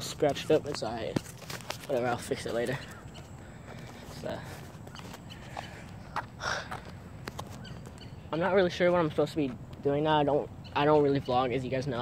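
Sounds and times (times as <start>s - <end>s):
person speaking: 0.0s - 3.2s, 3.8s - 4.9s.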